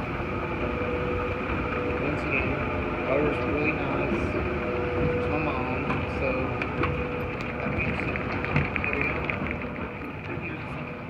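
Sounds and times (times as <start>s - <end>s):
escalator mechanical drone: 0.0s - 11.0s.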